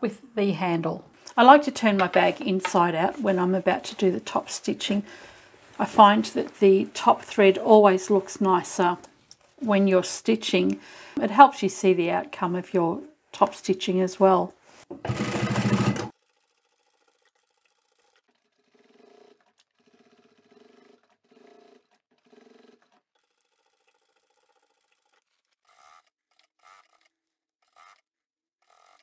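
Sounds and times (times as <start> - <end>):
sewing machine stitching: 15.0 - 28.0, 28.6 - 29.0.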